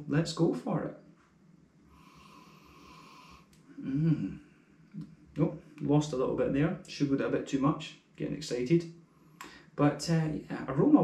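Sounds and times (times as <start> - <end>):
person sniffing through nose: 2.0 - 3.5.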